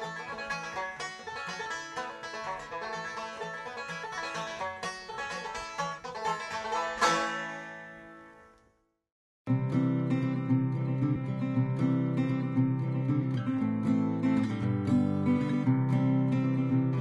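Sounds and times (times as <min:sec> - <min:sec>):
resonator banjo picking: 0:00.0 - 0:08.6, 0:09.5 - 0:17.0
acoustic guitar picking: 0:09.5 - 0:17.0.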